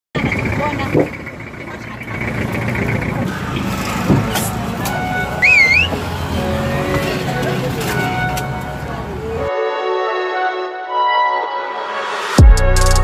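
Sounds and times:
street traffic: 0:00.1 - 0:11.5
people's voices: 0:00.2 - 0:09.5
warbling whistle: 0:05.4 - 0:06.0.

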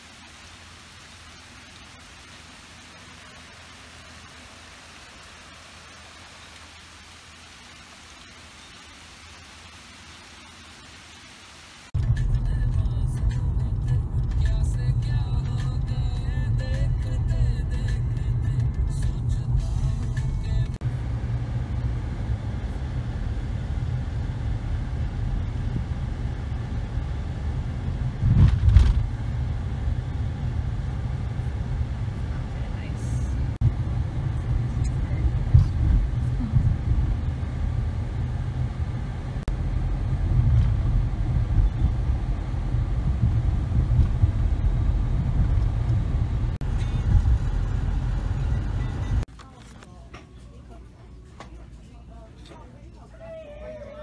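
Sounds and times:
car cabin road rumble: 0:11.9 - 0:49.8.

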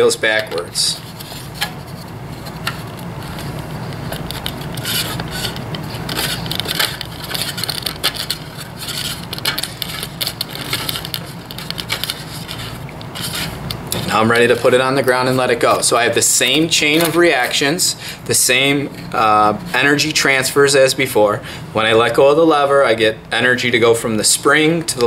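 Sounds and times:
scrapes rubs and clicks of toy car: 0:01.0 - 0:13.6.

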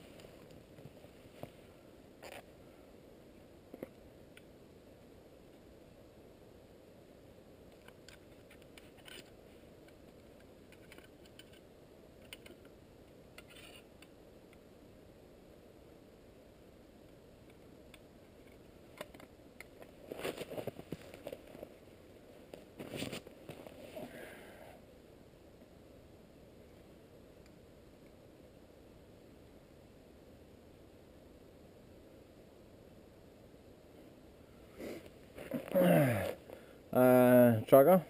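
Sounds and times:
knife scraping a stick: 0:13.4 - 0:13.9.

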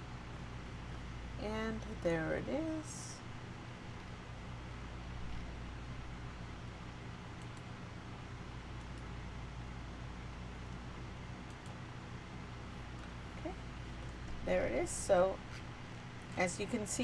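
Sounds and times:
room tone hum and hiss: 0:00.0 - 0:17.0
faint clicks: 0:07.4 - 0:07.7.

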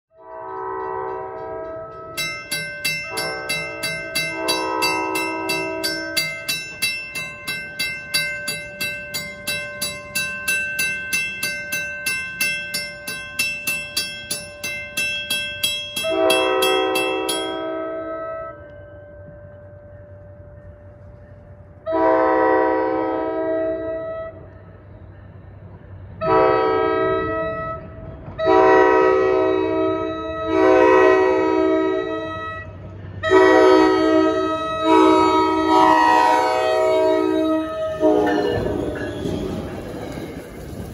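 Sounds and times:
train horn blasts: 0:00.1 - 0:06.7, 0:16.0 - 0:18.9, 0:21.8 - 0:24.4, 0:26.2 - 0:39.8
railroad crossing bell ringing: 0:00.2 - 0:21.1, 0:26.3 - 0:40.9.

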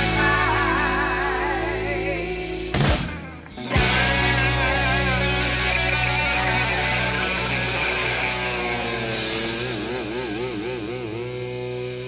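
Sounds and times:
drum kit playing: 0:00.0 - 0:12.0
electric guitar chords: 0:00.0 - 0:12.0.

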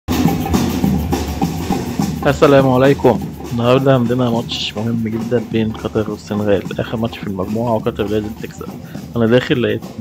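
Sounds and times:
snare and bass drums: 0:00.1 - 0:10.0.

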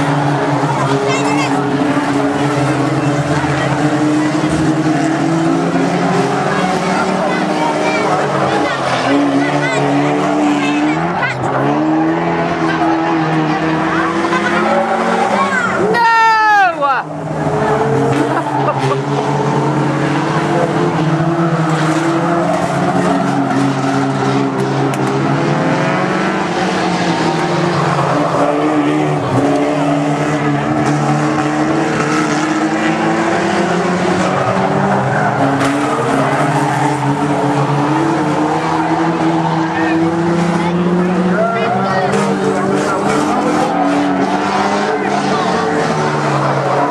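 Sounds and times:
racing car engines revving: 0:00.0 - 0:46.9.

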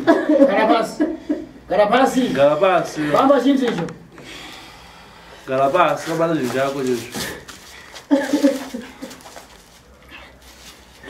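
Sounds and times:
people talking: 0:05.5 - 0:07.4.

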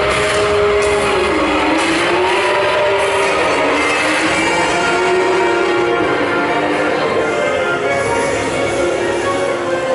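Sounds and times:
car engine over speakers: 0:00.0 - 0:09.9.

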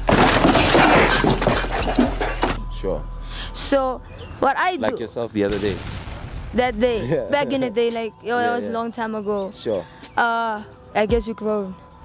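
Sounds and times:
glass breaking crash: 0:00.0 - 0:02.6.

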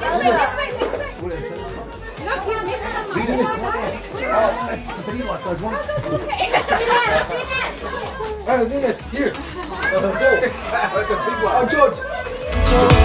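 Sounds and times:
children shouting and chattering: 0:00.0 - 0:13.0.

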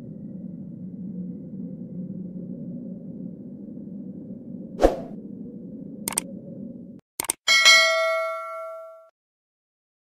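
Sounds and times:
short whoosh: 0:04.8 - 0:05.2
notification bell ding: 0:07.5 - 0:09.1.

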